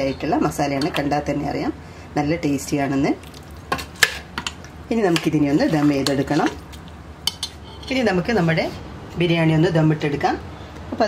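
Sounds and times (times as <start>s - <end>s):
food frying in a pot: 3.2s - 4.6s
person speaking: 4.9s - 6.7s
metal spoon scraping a pot: 5.1s - 6.6s, 7.3s - 8.6s
spoon clinking against pot: 7.3s - 8.0s.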